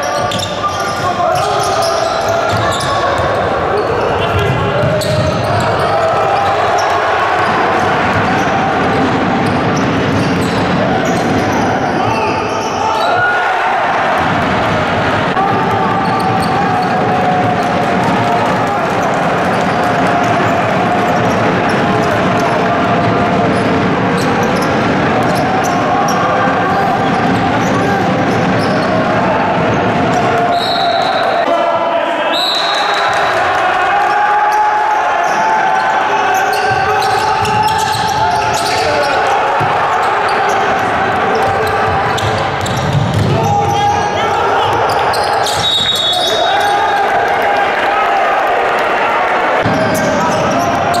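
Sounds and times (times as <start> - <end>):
players and spectators voices: 0.0 - 51.0.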